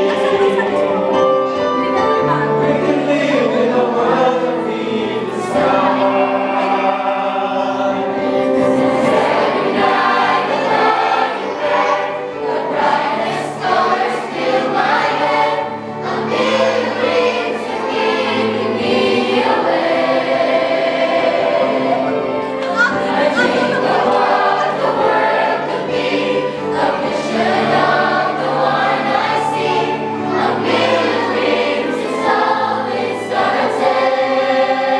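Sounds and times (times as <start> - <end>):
mixed choir singing: 0.0 - 34.9.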